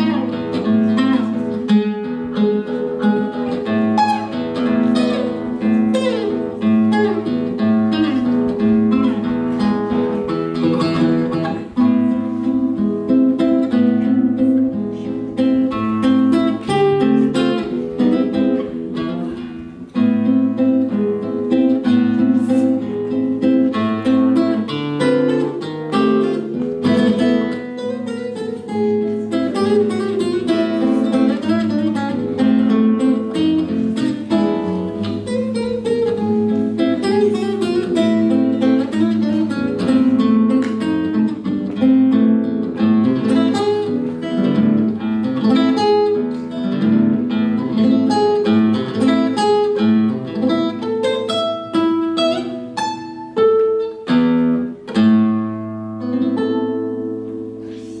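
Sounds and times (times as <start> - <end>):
fingerstyle classical guitar: 0.0 - 58.0.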